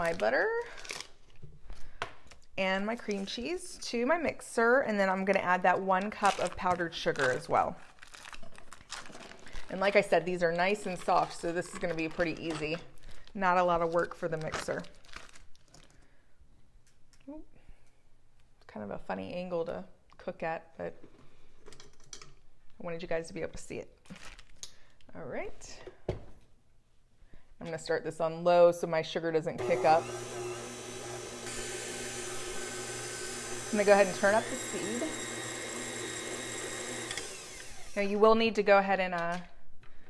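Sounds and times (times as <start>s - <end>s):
food wrapper crinkling: 0.0s - 3.1s, 6.0s - 16.1s, 24.0s - 25.0s
stand mixer motor whine: 29.6s - 38.0s.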